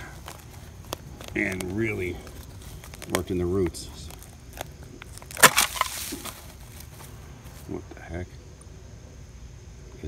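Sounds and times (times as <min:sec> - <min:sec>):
roots and leaves snapping and crackling: 0:00.0 - 0:07.8.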